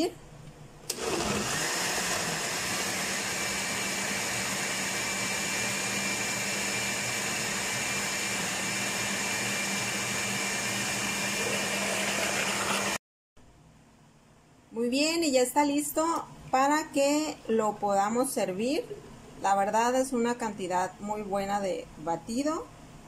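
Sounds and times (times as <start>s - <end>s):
blender motor running: 0.9s - 13.0s.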